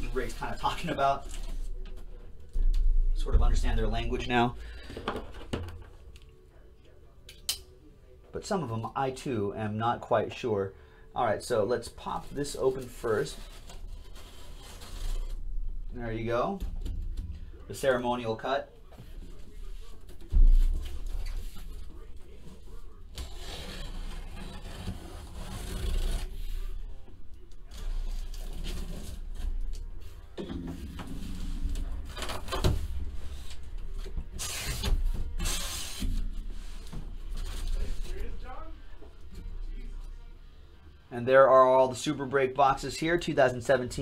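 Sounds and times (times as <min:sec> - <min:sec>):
cardboard and tape tearing: 0:12.8 - 0:15.4, 0:23.1 - 0:26.6, 0:34.3 - 0:36.3.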